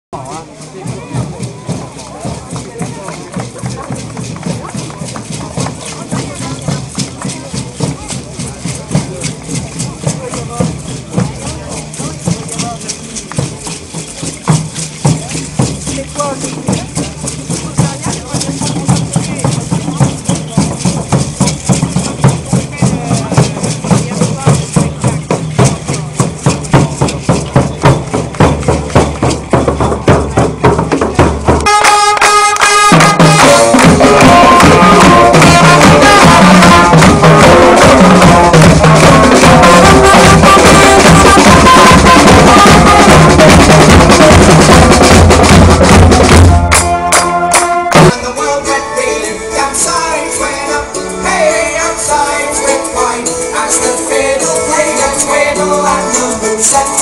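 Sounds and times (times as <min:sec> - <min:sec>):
crowd talking: 0:00.1 - 0:57.0
shaken rattles: 0:00.2 - 0:31.6
fast steady drumbeat: 0:00.2 - 0:48.4.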